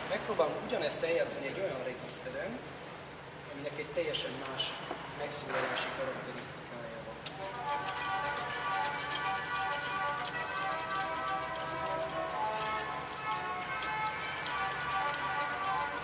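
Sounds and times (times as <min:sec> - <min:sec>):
pipe organ playing: 0:07.4 - 0:16.0.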